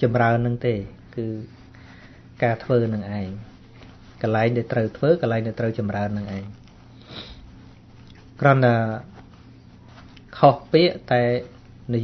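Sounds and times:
man speaking: 0:00.0 - 0:01.6, 0:02.4 - 0:06.6, 0:08.4 - 0:09.2, 0:10.3 - 0:12.0
nose sniff: 0:06.8 - 0:08.2.

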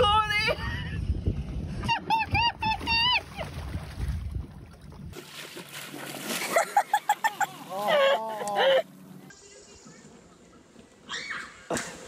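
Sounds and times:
water splashing: 0:01.9 - 0:08.8
person squealing cries: 0:07.3 - 0:08.9.

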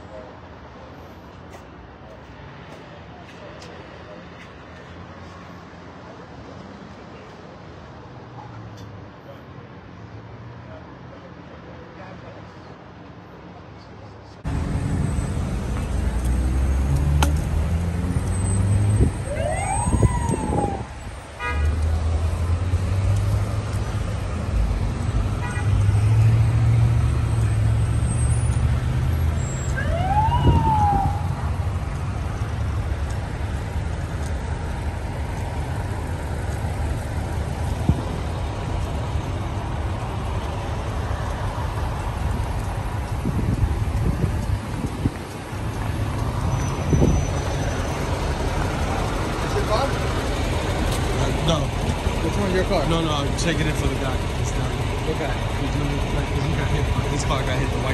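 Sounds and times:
vehicle engines idling: 0:13.8 - 0:57.9
siren whoops: 0:19.1 - 0:21.0, 0:29.5 - 0:31.4.

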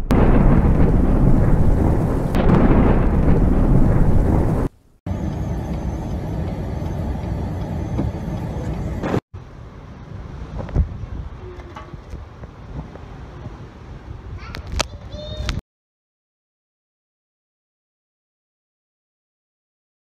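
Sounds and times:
rain: 0:00.0 - 0:05.0, 0:09.0 - 0:14.8
thunder rumble: 0:00.0 - 0:11.5
blizzard wind: 0:00.0 - 0:15.6.

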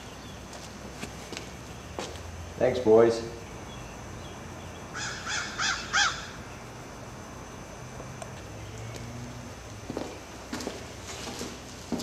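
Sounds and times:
crow cawing: 0:04.9 - 0:06.4.

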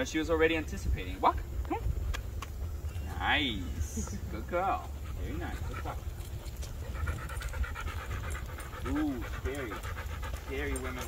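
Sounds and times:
steady low rumble: 0:00.0 - 0:11.0
dog panting rapidly: 0:03.9 - 0:11.0.

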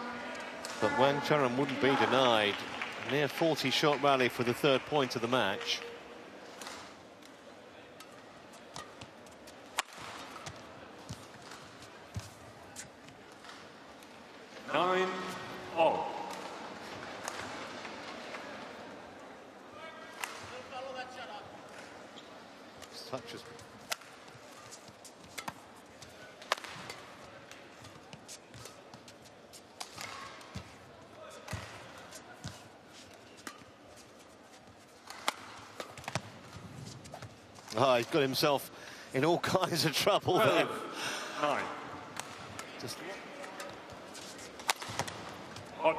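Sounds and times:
arena crowd noise: 0:00.0 - 0:45.9
racquets striking shuttlecock: 0:08.0 - 0:13.6, 0:23.7 - 0:30.8, 0:34.7 - 0:37.7, 0:43.4 - 0:45.7.

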